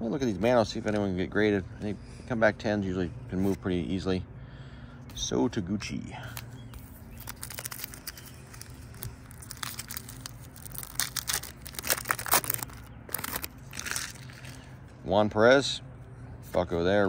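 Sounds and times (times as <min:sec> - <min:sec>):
low steady hum: 0:00.0 - 0:17.0
wrapper tearing and crumpling: 0:07.0 - 0:14.7.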